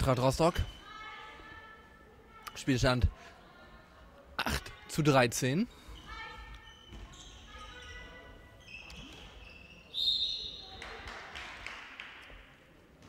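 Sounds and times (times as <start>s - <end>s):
shoes squeaking: 5.7s - 10.8s
ball bouncing on hall floor: 6.1s - 9.8s.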